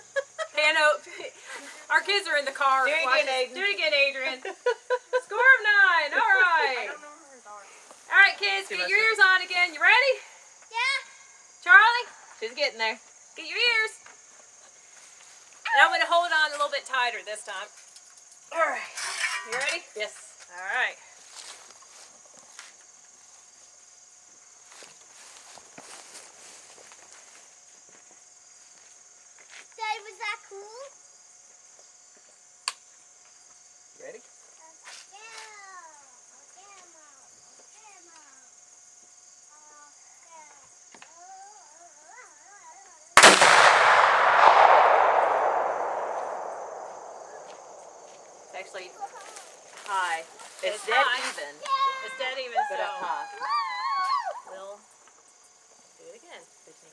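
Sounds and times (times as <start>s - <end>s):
rifle shot with long rumble: 43.2s - 48.4s.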